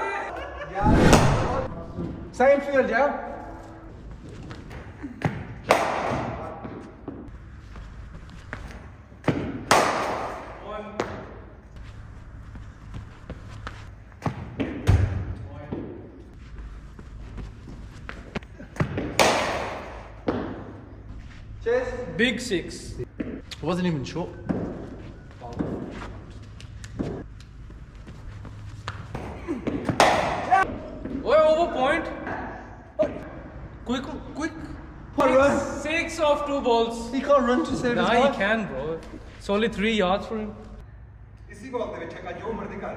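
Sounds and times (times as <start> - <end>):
steady low hum: 3.4 - 31.2.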